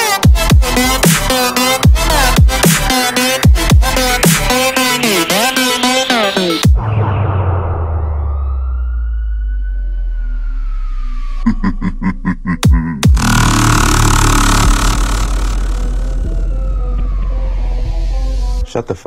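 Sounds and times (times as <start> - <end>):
heavy dubstep track: 0.0 - 6.7, 12.4 - 16.8.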